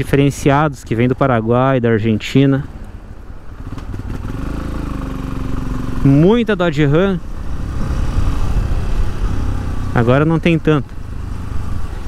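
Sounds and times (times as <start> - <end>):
motorcycle engine at low revs: 3.3 - 12.0.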